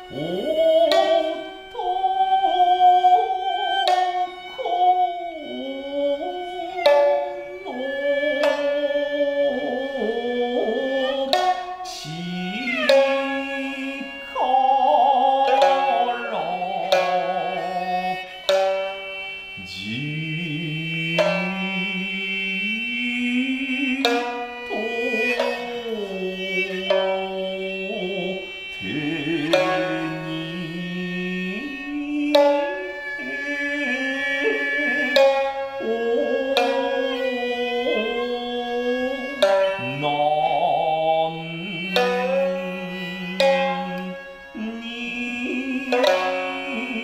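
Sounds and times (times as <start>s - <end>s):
plucked shamisen notes: 0.0s - 47.0s
sliding sustained melody: 0.0s - 47.0s.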